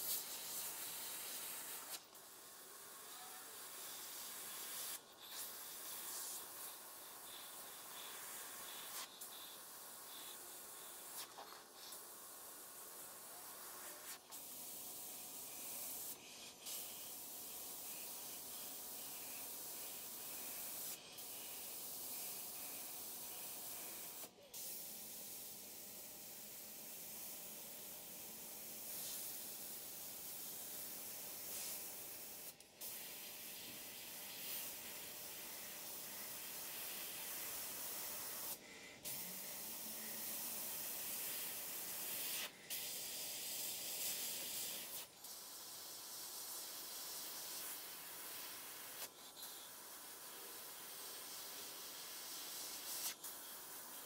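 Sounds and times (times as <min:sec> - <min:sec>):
airbrush hissing: 0:00.0 - 0:54.0.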